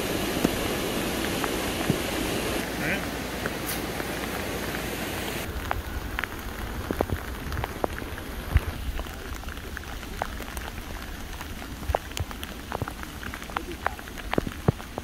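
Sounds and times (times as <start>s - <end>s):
floodwater rushing: 0.0s - 15.0s
rain pattering: 0.0s - 15.0s.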